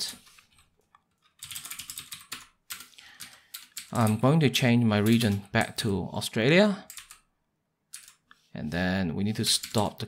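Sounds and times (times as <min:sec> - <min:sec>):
typing on computer keyboard: 0:01.3 - 0:04.2, 0:05.0 - 0:05.8, 0:06.9 - 0:07.3, 0:07.9 - 0:08.2, 0:09.6 - 0:10.0.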